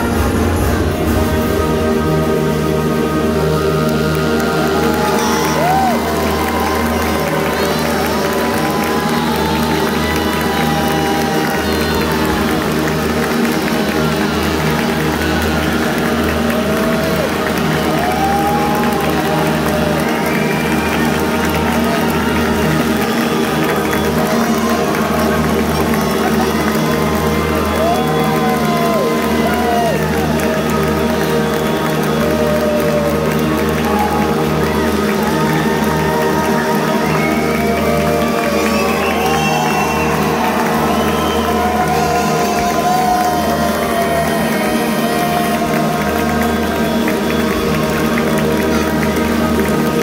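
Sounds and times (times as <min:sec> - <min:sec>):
audience cheering and whooping: 0:03.4 - 0:50.0.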